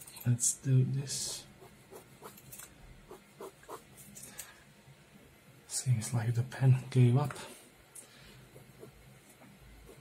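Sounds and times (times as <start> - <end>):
pen scratching on paper: 3.1 - 3.8.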